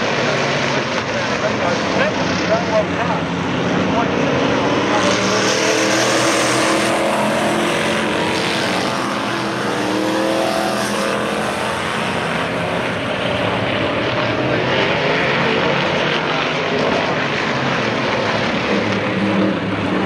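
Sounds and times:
race car engines droning: 0:00.0 - 0:20.0.

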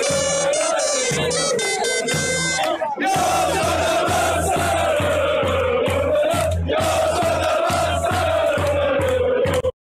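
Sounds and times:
music with steady beat: 0:00.0 - 0:09.7
stadium crowd cheering: 0:00.0 - 0:09.7.

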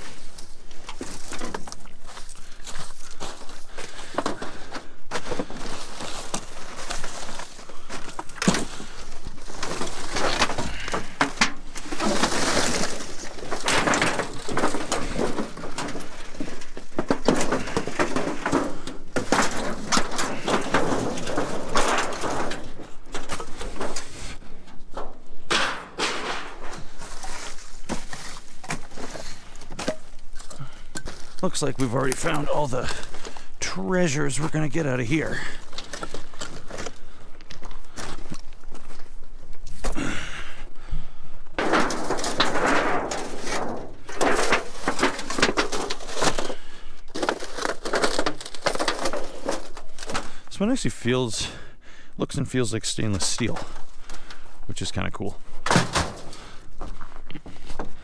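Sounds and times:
debris scraping and clattering: 0:00.0 - 0:40.2, 0:41.5 - 0:51.5, 0:52.6 - 0:58.0.

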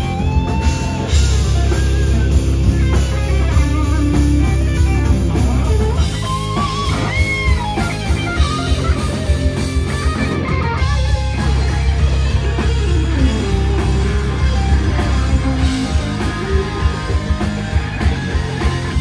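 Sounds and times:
bass guitar: 0:00.0 - 0:19.0
drum kit: 0:00.0 - 0:19.0
electric guitars: 0:00.0 - 0:19.0.

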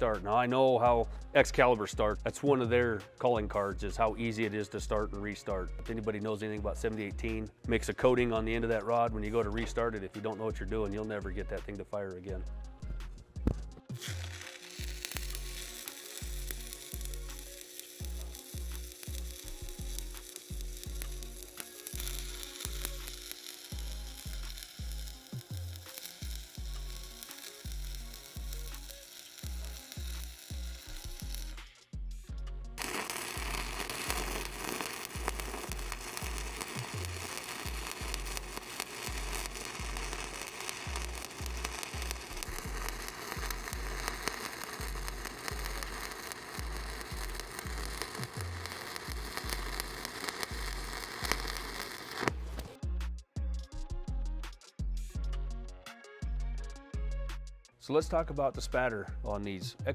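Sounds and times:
background music with low beat: 0:00.0 - 0:59.9
welding arc crackling: 0:13.9 - 0:31.7, 0:32.8 - 0:52.8.

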